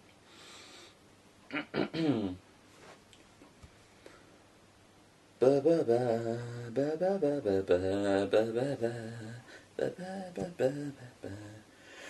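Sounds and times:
man humming wordless tune: 1.5 - 2.4, 5.4 - 11.8.

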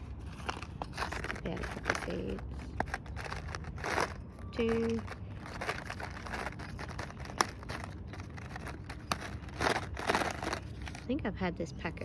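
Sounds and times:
paper packet crinkling: 0.0 - 11.2.

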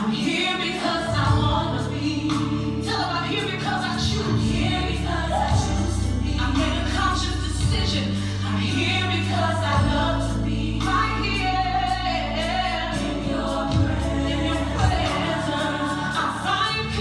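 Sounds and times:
choir singing gospel song: 0.0 - 17.0.

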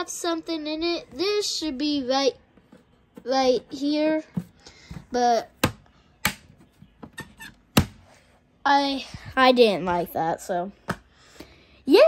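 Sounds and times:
sharp handling knocks: 4.3 - 8.0.

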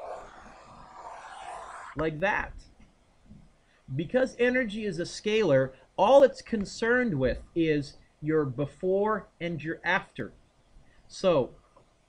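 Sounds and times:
pen scratching on tablet screen: 0.0 - 2.0.

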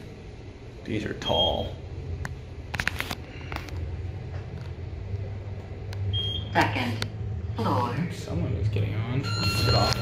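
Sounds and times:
elevator ride hum: 0.0 - 10.0.

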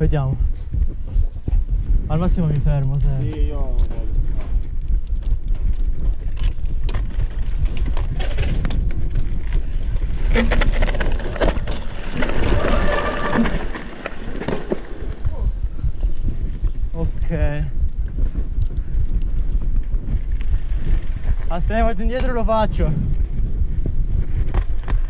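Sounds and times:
wind buffeting microphone: 0.0 - 25.0
bike chain and frame rattling: 3.0 - 15.3, 18.2 - 22.4, 24.4 - 25.0.

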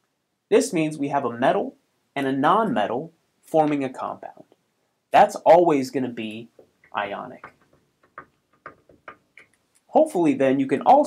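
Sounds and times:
chalk tapping and scraping on blackboard: 6.2 - 9.6.

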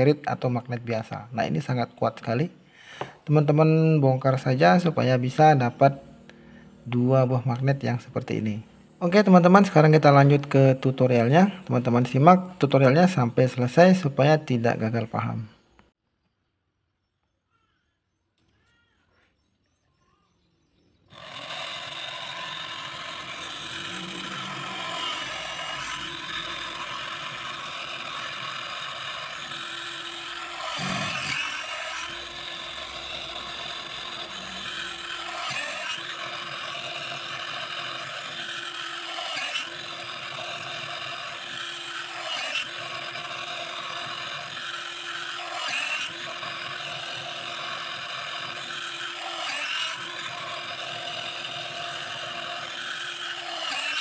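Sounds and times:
drill bit scraping through plastic: 21.1 - 54.0
drill press motor whining: 21.1 - 54.0.

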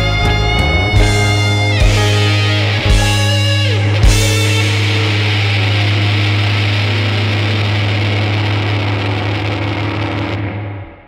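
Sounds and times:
distorted guitar and bass chord: 0.0 - 11.0.

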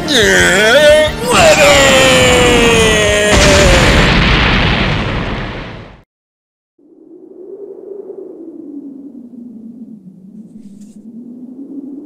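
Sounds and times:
low wavering drone: 6.8 - 12.0.

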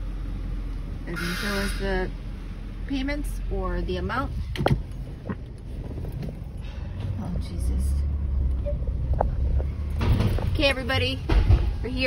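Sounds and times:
car cabin rumble: 0.9 - 12.0.

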